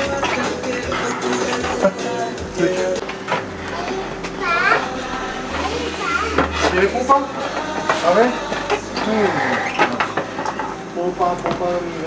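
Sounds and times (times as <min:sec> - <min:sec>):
indistinct voices: 0:00.0 - 0:12.0
quiet background music: 0:00.0 - 0:12.0
child's high voice: 0:03.7 - 0:05.0, 0:05.8 - 0:06.5.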